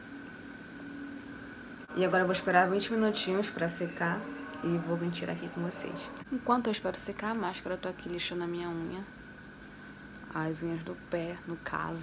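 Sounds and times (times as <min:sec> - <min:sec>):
electrical hum with high whine: 0:00.0 - 0:12.0.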